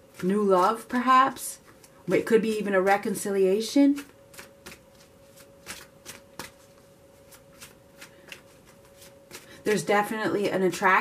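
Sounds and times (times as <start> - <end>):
cards being shuffled: 0.0 - 1.0, 4.0 - 9.9.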